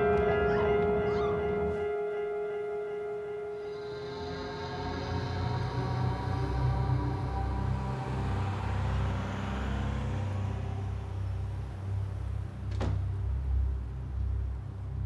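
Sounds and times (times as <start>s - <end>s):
steady low rumble: 3.1s - 15.0s.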